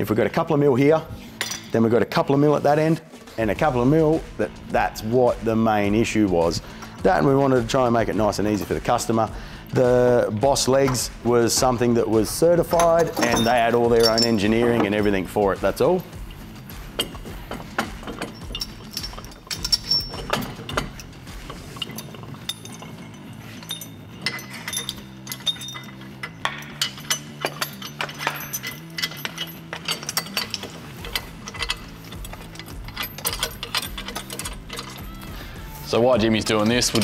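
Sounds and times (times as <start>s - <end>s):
low background music: 0.0s - 37.0s
metallic clinks and knocks: 10.2s - 37.0s.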